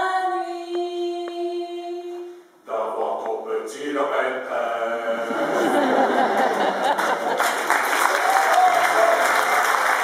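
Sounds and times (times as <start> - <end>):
group singing a cappella: 0.0 - 6.2.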